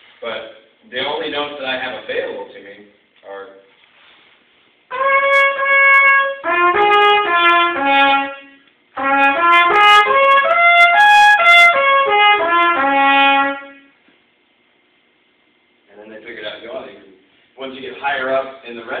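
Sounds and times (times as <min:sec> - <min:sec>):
trumpet playing open notes: 0:04.9 - 0:14.0.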